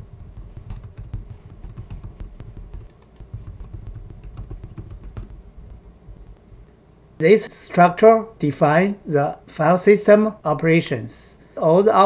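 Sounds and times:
computer keyboard typing: 0.0 - 6.6.

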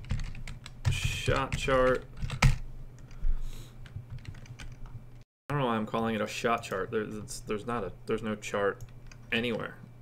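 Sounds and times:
computer keyboard typing: 0.0 - 3.1, 3.8 - 4.9.

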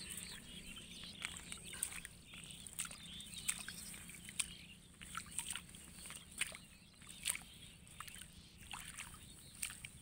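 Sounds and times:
shallow water sloshing: 0.0 - 10.0
short splashes: 1.2 - 10.0.

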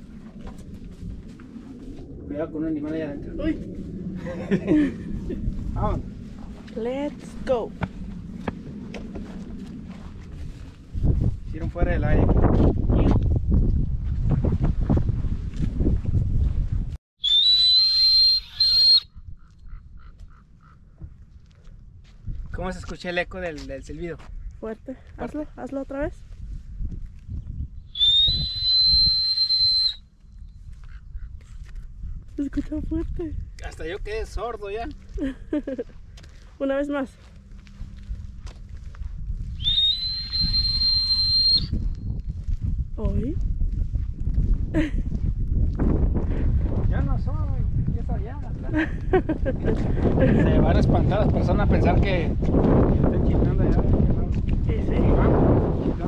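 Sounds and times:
wind rumbling on microphone: 0.0 - 56.0
person whistling shrilly: 17.2 - 19.1, 27.9 - 30.0, 39.6 - 42.0.

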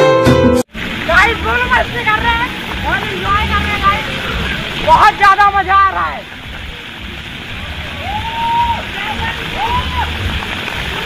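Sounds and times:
fountain jets spraying: 0.7 - 11.0.

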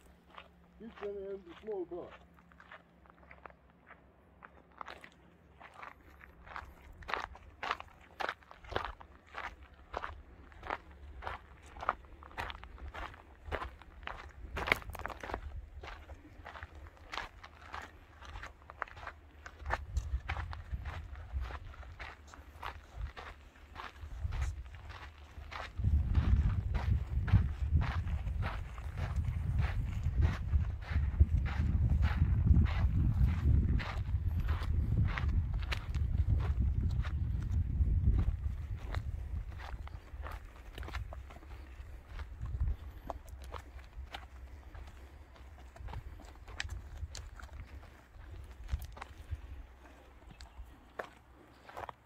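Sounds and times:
footsteps on stony dirt trail: 0.0 - 52.0.

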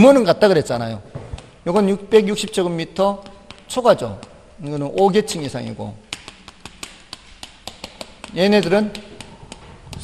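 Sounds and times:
chalk tapping on chalkboard: 3.0 - 10.0.

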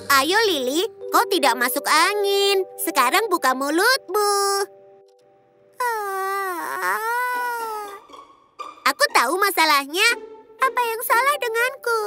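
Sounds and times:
child holding long aaah: 5.8 - 8.0.

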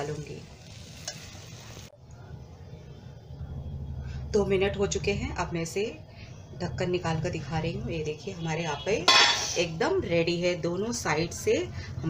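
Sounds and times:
batter sizzling in a pan: 0.0 - 1.9.

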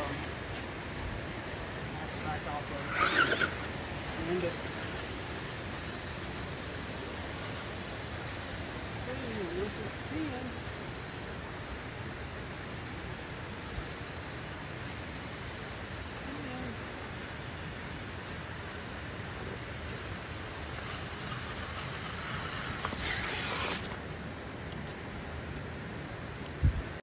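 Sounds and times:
outdoor background hiss: 0.0 - 27.0
rustling noise: 20.7 - 25.2.

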